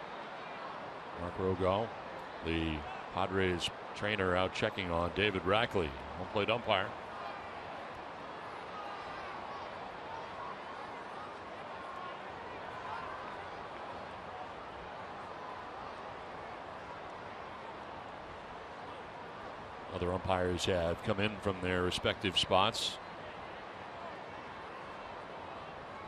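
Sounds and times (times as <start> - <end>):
distant crowd hubbub: 0.0 - 26.0.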